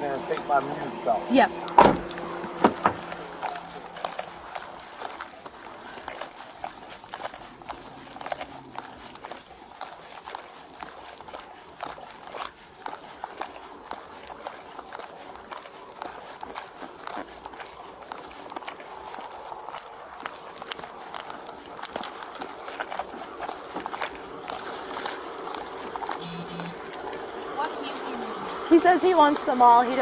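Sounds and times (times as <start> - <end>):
footsteps on concrete: 1.6 - 27.0.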